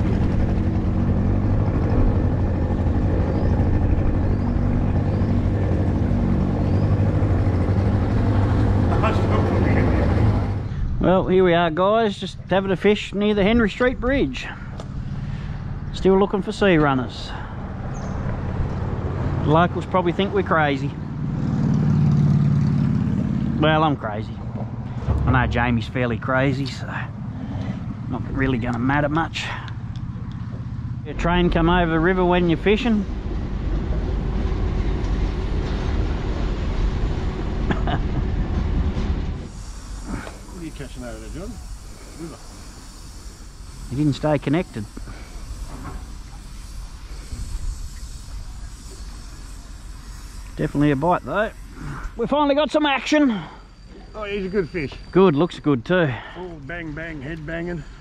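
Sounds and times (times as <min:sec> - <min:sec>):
freight train rumbling: 0:00.0 - 0:58.0
train hiss: 0:39.2 - 0:58.0.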